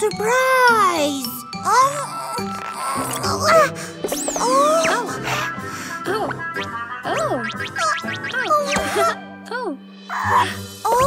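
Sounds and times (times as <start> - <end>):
cheerful cartoon music: 0.0 - 11.0.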